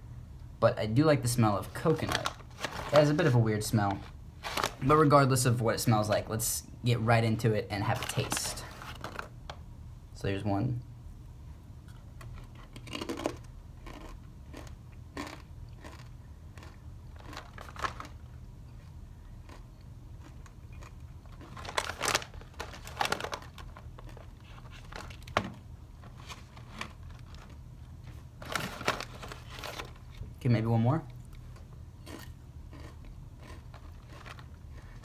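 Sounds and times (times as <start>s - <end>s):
steady low hum: 0.0s - 35.0s
snack bag crinkling: 1.6s - 4.9s, 7.8s - 9.4s, 12.2s - 18.3s, 19.4s - 30.4s, 31.3s - 35.0s
crunchy chips being chewed: 12.4s - 25.3s, 31.2s - 35.0s.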